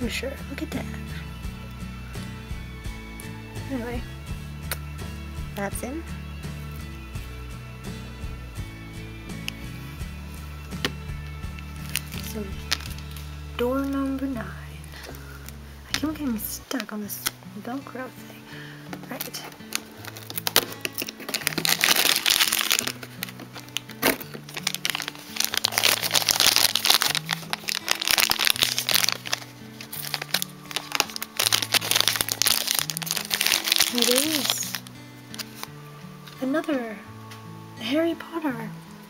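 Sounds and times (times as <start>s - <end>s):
background music: 0.0s - 39.0s
sharp snaps: 4.6s - 4.9s
plastic wrapper crinkling: 10.8s - 17.4s, 18.9s - 36.7s.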